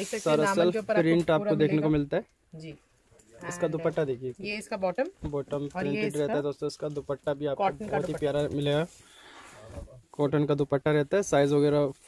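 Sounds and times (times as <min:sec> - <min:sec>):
person talking: 0:00.0 - 0:02.1, 0:05.2 - 0:08.9.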